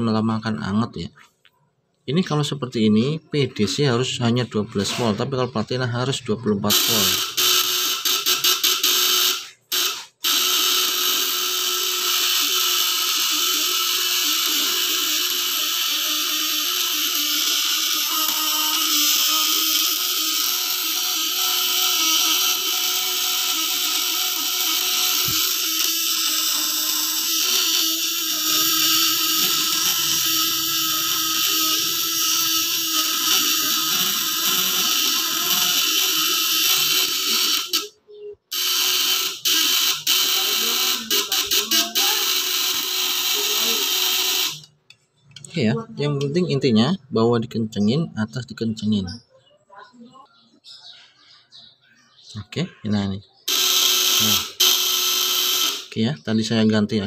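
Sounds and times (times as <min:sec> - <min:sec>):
inverter points buzzing: 0:00.0 - 0:49.3, 0:52.2 - 0:57.0.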